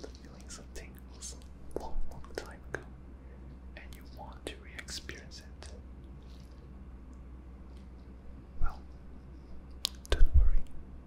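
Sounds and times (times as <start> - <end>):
person whispering: 0.0 - 2.9, 3.7 - 5.8, 10.0 - 10.7
steady low hum: 0.0 - 11.0
lip and mouth clicks: 9.8 - 10.7.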